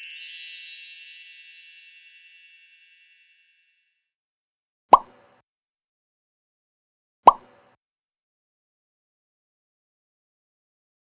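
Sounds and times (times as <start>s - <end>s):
cartoon plop pops: 4.9s - 5.2s, 7.2s - 7.5s.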